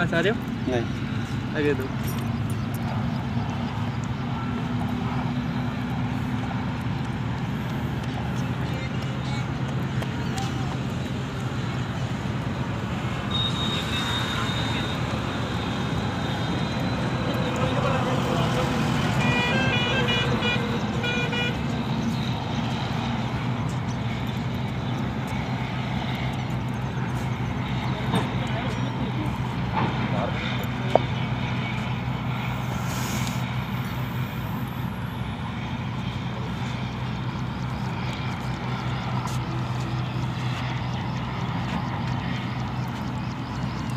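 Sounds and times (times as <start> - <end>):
highway traffic rumble: 0.0 - 43.9.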